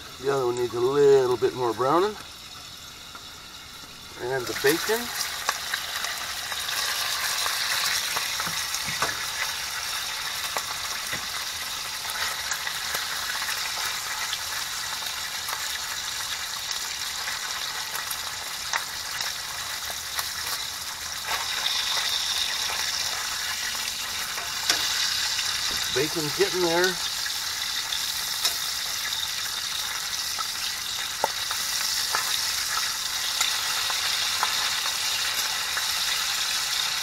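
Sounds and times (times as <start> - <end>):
bacon sizzling in a pan: 0.0 - 37.0
utensils clicking in pan: 21.2 - 35.9.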